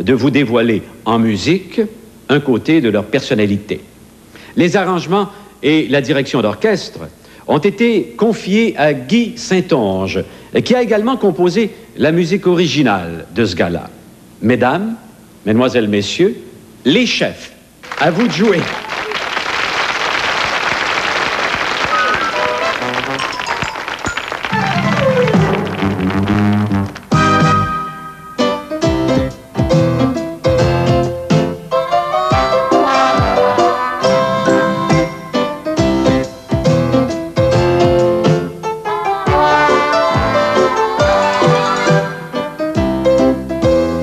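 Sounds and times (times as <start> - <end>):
studio audience applauding: 17.8 - 27.7
orchestra playing held notes: 21.9 - 28.5, 38.8 - 42.5
grand piano playing chords: 22.0 - 44.0
bass line: 24.6 - 27.9, 28.8 - 31.6.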